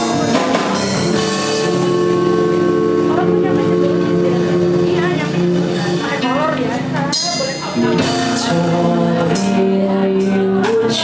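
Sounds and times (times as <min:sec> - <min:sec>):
man singing into a microphone: 0:00.0 - 0:05.0, 0:07.8 - 0:11.0
strummed acoustic guitar: 0:00.0 - 0:11.0.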